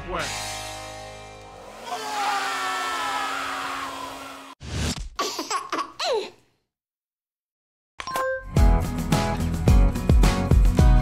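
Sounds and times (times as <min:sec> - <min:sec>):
hair dryer running: 0:01.7 - 0:04.6.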